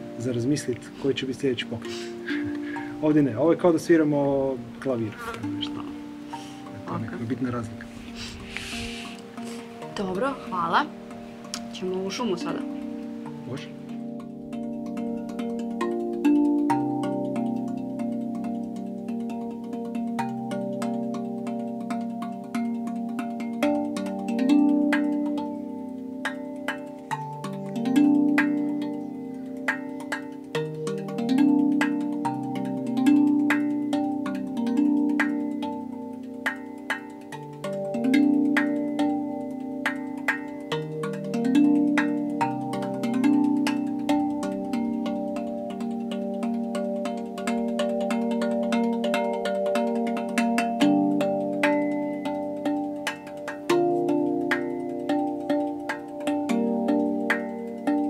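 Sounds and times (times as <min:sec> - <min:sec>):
steel tongue drum notes ringing: 0:00.0 - 0:58.0.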